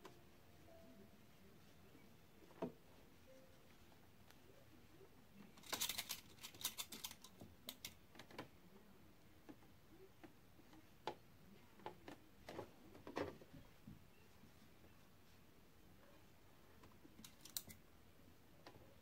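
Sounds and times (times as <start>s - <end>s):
light clicks of pins: 16.8s - 17.8s.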